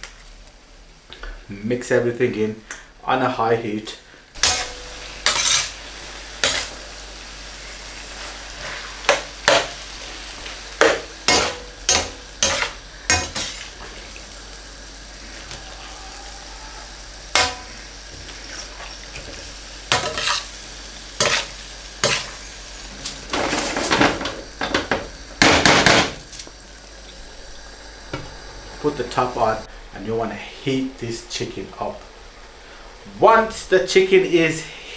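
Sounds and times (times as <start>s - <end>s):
steady sizzle: 0.0s - 34.9s
metal spatula scraping a pan: 4.4s - 5.8s, 6.4s - 6.8s, 10.8s - 13.9s, 17.3s - 17.8s, 19.9s - 20.5s, 21.2s - 22.4s.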